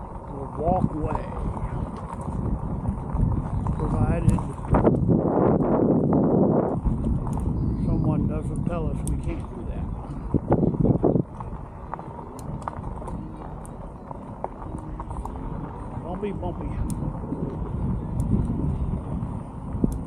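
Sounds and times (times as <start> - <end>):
bike tyres rolling on dirt road: 0.0 - 20.0
wind buffeting microphone: 0.0 - 20.0.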